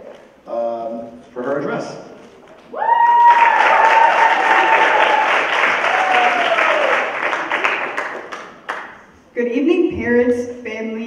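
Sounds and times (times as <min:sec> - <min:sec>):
person whooping: 0:02.7 - 0:07.1
audience applause: 0:02.8 - 0:09.0.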